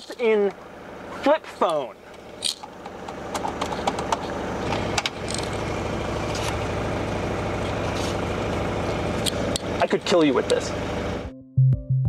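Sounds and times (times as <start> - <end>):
diesel engine idling: 0.0 - 11.3.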